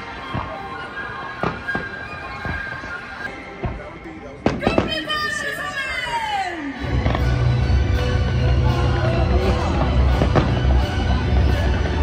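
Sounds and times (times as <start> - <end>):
fireworks bursting: 0.0 - 5.4, 6.9 - 8.1, 9.2 - 12.0
sustained music: 6.6 - 12.0.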